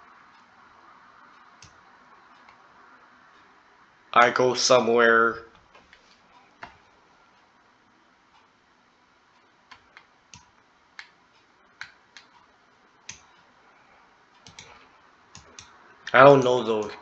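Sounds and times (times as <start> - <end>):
computer mouse clicking: 9.7 - 11.2, 14.4 - 15.8.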